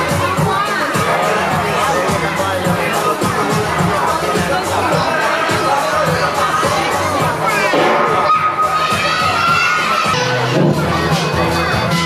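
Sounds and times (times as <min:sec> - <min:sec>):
music playing: 0:00.0 - 0:12.0
young children shouting and cheering: 0:00.0 - 0:12.0.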